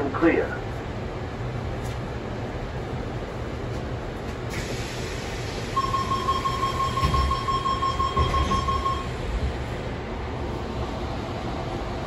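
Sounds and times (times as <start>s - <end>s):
train carriage rumble: 0.0s - 12.0s
high door warning beep: 5.8s - 9.2s.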